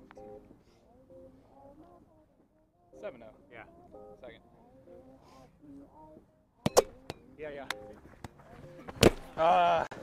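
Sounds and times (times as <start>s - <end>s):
ball hitting taut net: 6.6s - 9.4s.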